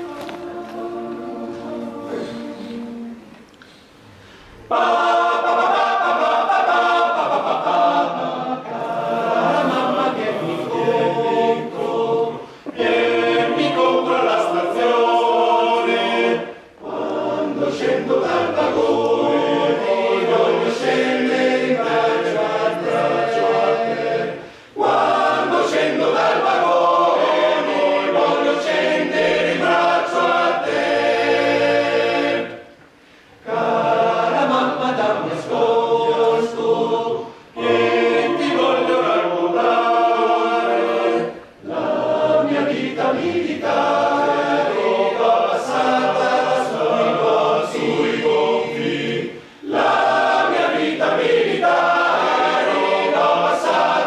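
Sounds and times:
male choir singing a cappella: 0.0s - 54.0s.

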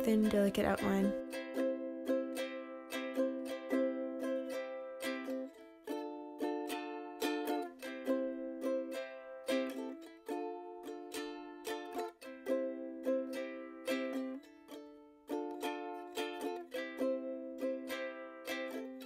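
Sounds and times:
ukulele strumming chords: 0.0s - 19.0s.

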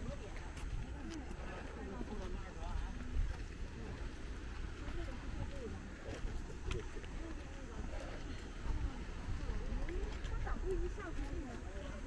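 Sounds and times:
faint chatter of voices: 0.0s - 12.0s
wind buffeting microphone: 0.0s - 12.0s.

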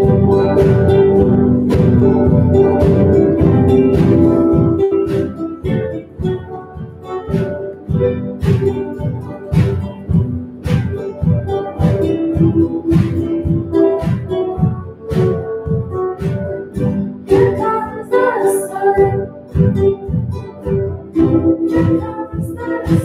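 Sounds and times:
small ensemble playing music: 0.0s - 23.0s.

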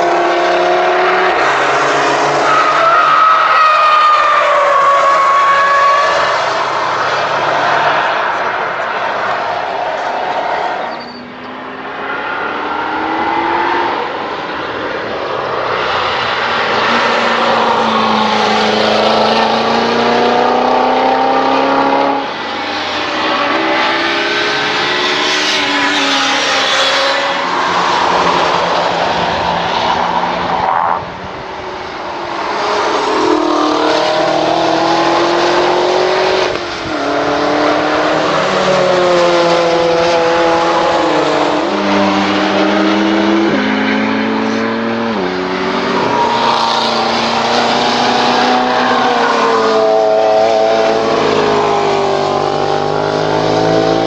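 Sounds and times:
sports car engines revving: 0.0s - 3.2s, 4.8s - 54.0s.

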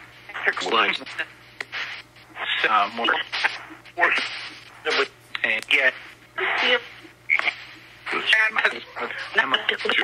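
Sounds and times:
steady low hum: 0.0s - 10.0s
chopped speech fragments: 0.3s - 1.4s, 2.4s - 10.0s.

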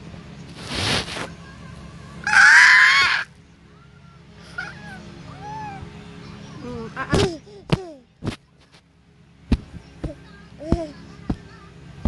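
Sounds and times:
baby squealing: 2.2s - 3.3s, 4.6s - 5.8s.

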